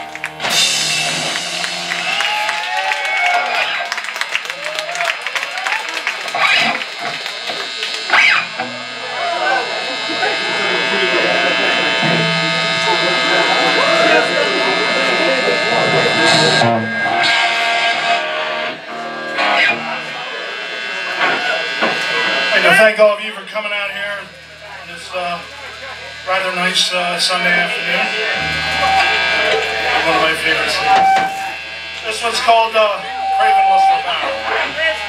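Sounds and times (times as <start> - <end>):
ringing guitar notes: 0.0 - 2.4, 6.3 - 35.0
crowd chatter: 0.0 - 35.0
guitar amplifier buzzing: 0.0 - 35.0.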